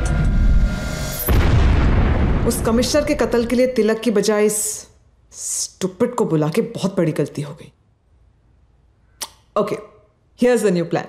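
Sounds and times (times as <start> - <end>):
woman speaking: 2.4 - 7.8, 9.5 - 11.0.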